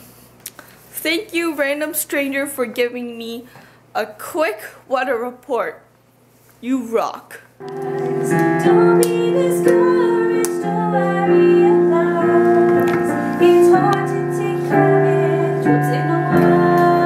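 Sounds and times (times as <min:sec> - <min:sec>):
digital piano chords: 0:07.6 - 0:17.0
woman singing: 0:07.6 - 0:17.0.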